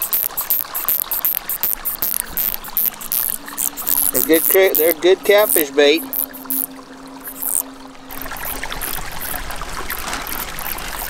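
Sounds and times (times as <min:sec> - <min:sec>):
creek water trickling over stones: 0:00.0 - 0:11.0.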